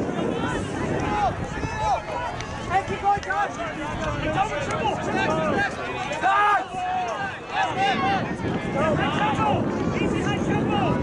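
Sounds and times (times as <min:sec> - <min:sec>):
low rumble of wind: 0:00.0 - 0:11.0
players shouting calls: 0:00.0 - 0:11.0.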